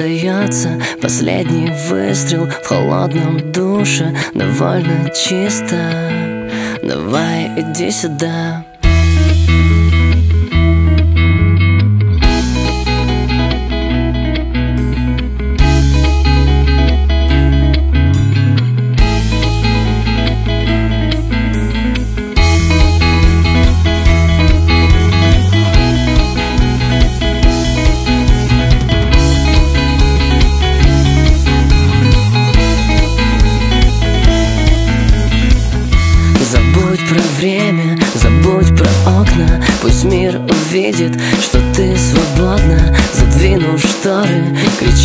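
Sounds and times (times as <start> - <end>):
rock guitar: 0.0 - 45.0
sustained bass notes: 7.1 - 43.8
regular drum beat: 21.6 - 45.0.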